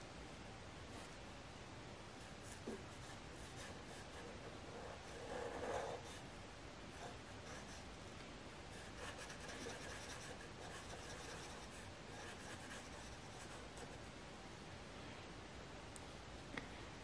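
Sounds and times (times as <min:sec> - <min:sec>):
marker scratching on paper: 0:02.2 - 0:06.2, 0:06.9 - 0:07.8, 0:08.7 - 0:14.0.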